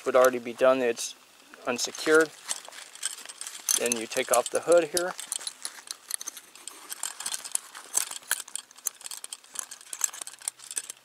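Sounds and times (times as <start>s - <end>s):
metal clip clicking and rattling: 1.8s - 11.0s.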